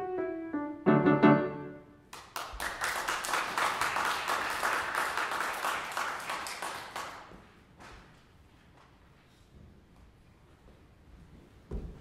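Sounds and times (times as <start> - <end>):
audience applauding: 2.1 - 7.4.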